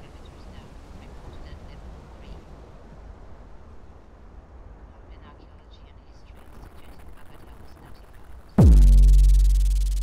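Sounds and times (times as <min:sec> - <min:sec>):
steady low rumble: 0:08.6 - 0:10.0.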